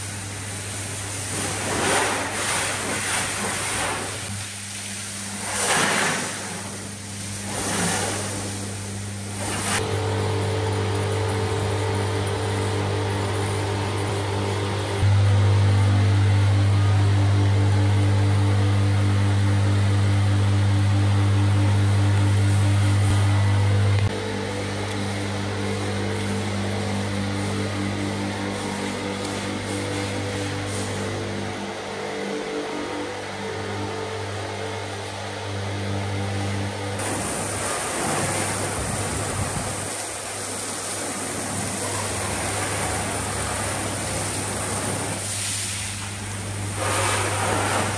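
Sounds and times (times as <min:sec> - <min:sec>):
low machine hum: 0:00.0 - 0:47.9.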